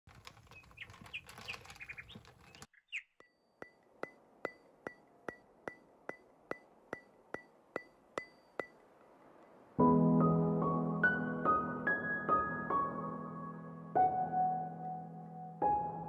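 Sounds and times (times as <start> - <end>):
birds chirping: 0.1 - 8.7.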